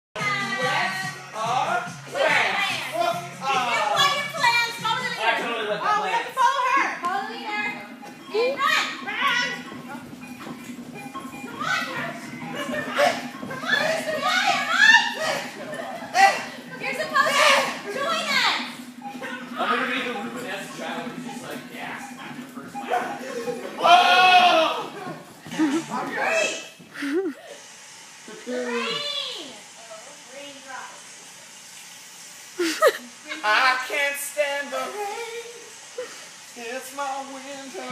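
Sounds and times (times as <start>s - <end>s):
children shouting while playing: 23.8s - 25.0s.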